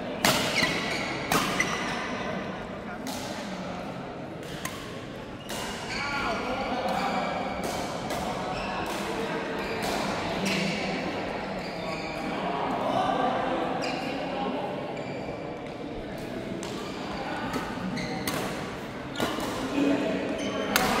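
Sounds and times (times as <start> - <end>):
rackets hitting shuttlecock: 0.2 - 1.9, 4.4 - 5.9, 6.8 - 10.3, 17.5 - 19.8, 20.5 - 21.0
shoes squeaking on court: 11.5 - 12.3, 17.8 - 19.5.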